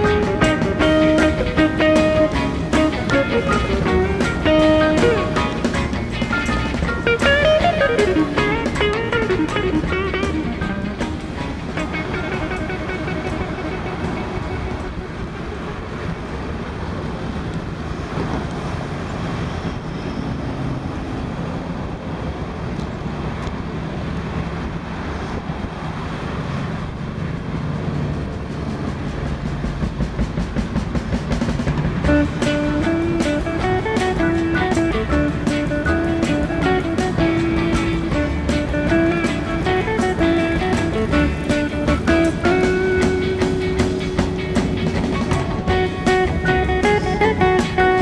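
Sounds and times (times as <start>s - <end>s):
guitar music: 0.0s - 15.8s, 31.4s - 48.0s
wind and ride noise: 0.0s - 48.0s.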